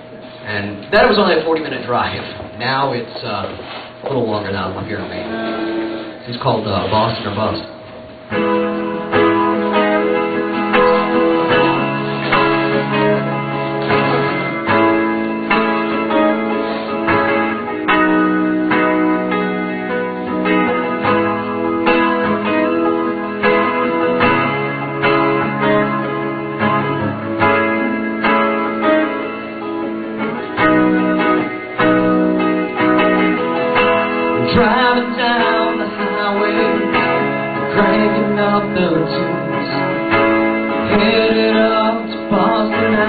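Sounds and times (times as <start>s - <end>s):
live band playing: 4.9s - 43.0s.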